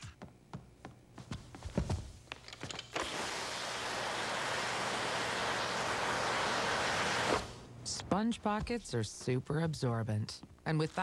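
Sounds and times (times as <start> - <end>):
water spraying hiss: 3.0 - 7.6.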